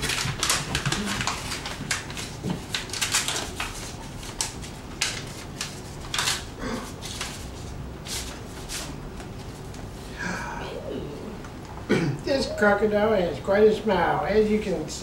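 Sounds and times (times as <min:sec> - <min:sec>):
paper tearing and crinkling: 0:00.0 - 0:09.0.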